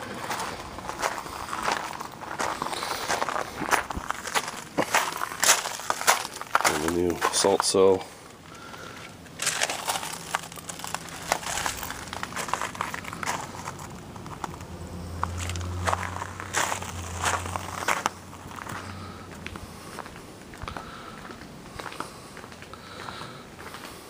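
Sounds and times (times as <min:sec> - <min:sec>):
footsteps crunching on gravel: 0:00.0 - 0:24.0
low steady hum: 0:00.0 - 0:24.0.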